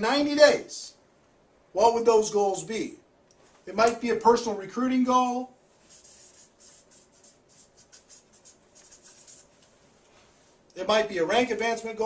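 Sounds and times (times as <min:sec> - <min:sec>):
felt-tip marker scratching on paper: 0:05.8 - 0:09.6.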